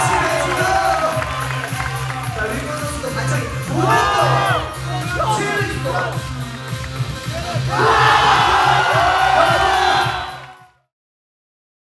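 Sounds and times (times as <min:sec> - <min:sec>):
crowd cheering and whooping: 0:00.0 - 0:02.6, 0:03.7 - 0:05.2, 0:07.3 - 0:10.7
hip-hop beat: 0:00.0 - 0:10.7.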